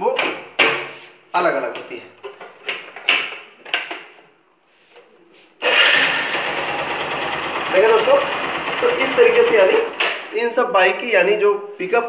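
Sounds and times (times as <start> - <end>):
small motorcycle engine idling: 5.6 - 10.2.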